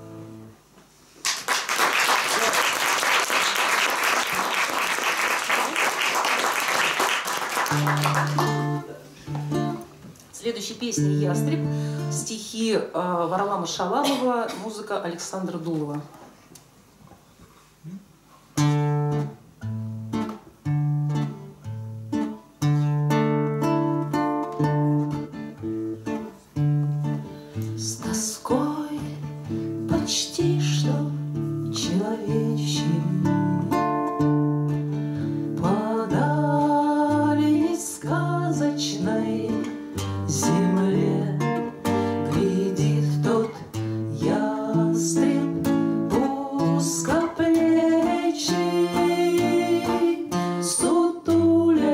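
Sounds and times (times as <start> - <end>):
acoustic guitars playing: 0.0 - 0.7, 3.4 - 12.6, 17.7 - 51.9
woman singing: 27.8 - 33.8, 35.6 - 51.9.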